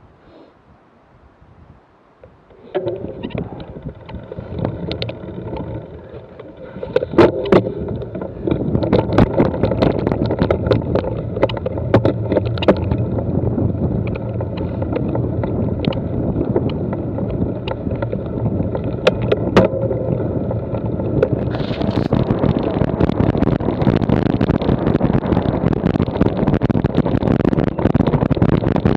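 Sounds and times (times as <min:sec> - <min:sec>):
bike tyres rolling over grass: 0:02.2 - 0:28.9
bike rattling and knocking: 0:02.8 - 0:28.9.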